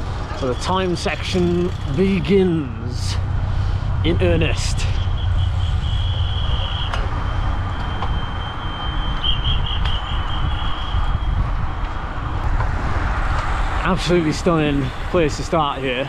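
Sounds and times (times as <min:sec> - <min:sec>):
wind buffeting microphone: 0:02.9 - 0:15.4.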